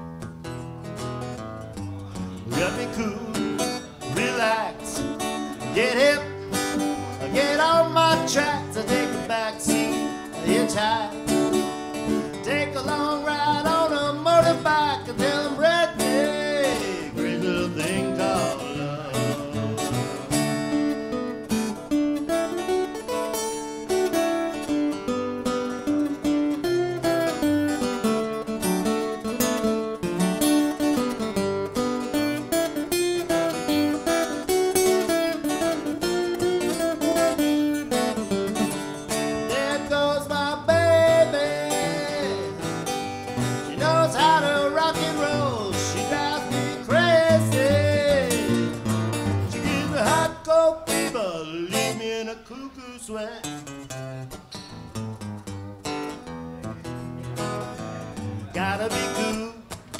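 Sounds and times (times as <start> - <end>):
quick picked guitar notes: 0.0 - 52.1
strummed guitar chords: 0.0 - 59.9.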